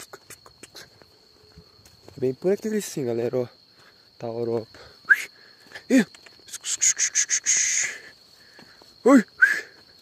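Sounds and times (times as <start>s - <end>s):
insect clicks: 0.0s - 1.1s, 5.9s - 7.6s
insect chorus buzzing: 0.0s - 10.0s.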